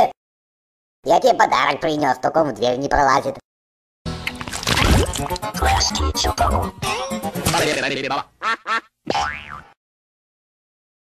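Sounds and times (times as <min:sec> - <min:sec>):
cartoon sound effects: 0:04.7 - 0:07.9
cartoon logo music: 0:04.8 - 0:07.8.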